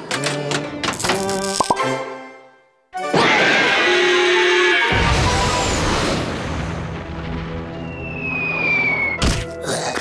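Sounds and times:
cartoon background music: 0:00.0 - 0:06.0.

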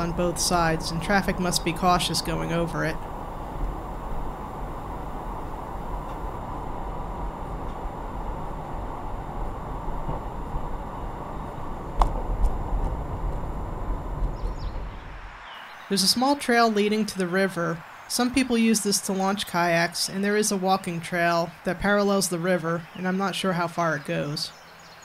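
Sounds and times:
car tyres and engine rumbling: 0:00.0 - 0:15.8.

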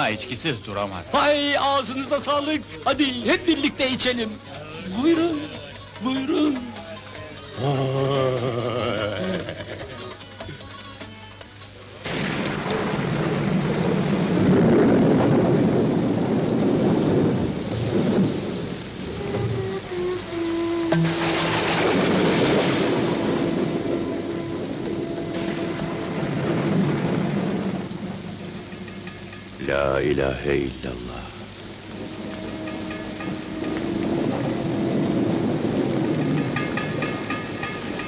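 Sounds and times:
heavy rain: 0:00.0 - 0:38.0
thunder rolling: 0:12.1 - 0:19.8, 0:20.9 - 0:38.0
soft sustained music notes: 0:19.1 - 0:38.0.

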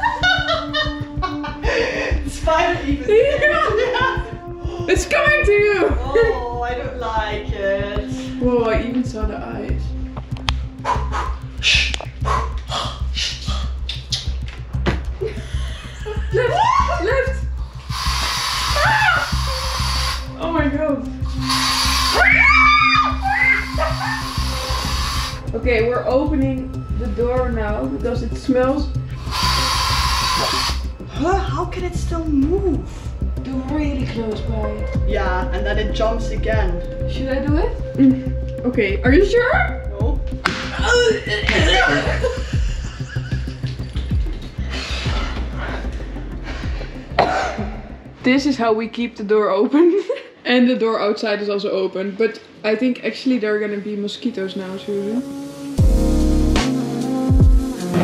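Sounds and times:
background music: 0:00.0 - 0:50.0, 0:52.4 - 0:58.0
women squealing and laughing: 0:16.0 - 0:17.4, 0:18.8 - 0:19.4, 0:22.1 - 0:24.4, 0:40.8 - 0:43.3
aerosol spray can hissing: 0:17.7 - 0:20.4, 0:21.2 - 0:25.5, 0:29.1 - 0:30.9
rising and falling squeal: 0:21.4 - 0:24.7.

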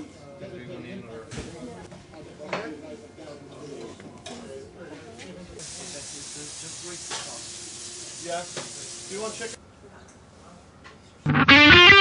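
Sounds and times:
food frying sizzle: 0:05.6 - 0:09.6.

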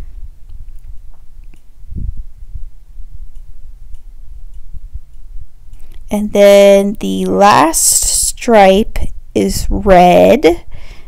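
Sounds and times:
light ticks: 0:03.3 - 0:06.0.

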